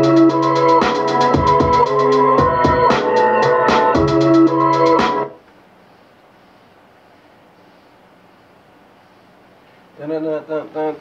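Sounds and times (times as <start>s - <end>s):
drum beat with keyboard tones: 0.0s - 5.4s
faint steady hiss: 5.4s - 11.0s.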